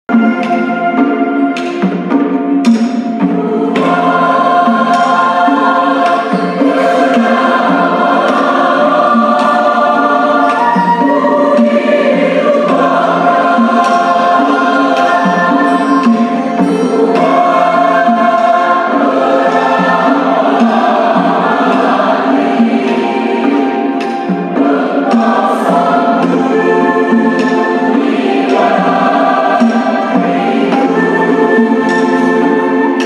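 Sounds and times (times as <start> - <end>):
choir singing a hymn: 0.1 - 33.0.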